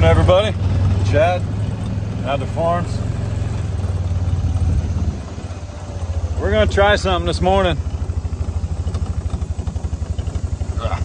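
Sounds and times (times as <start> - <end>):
utility vehicle engine idling: 0.0 - 11.0.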